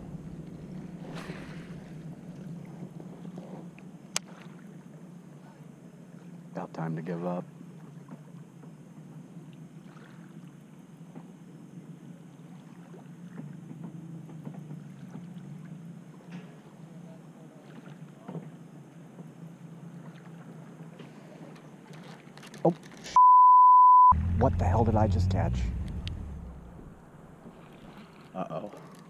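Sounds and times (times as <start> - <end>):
steady low hum: 24.1 - 28.0.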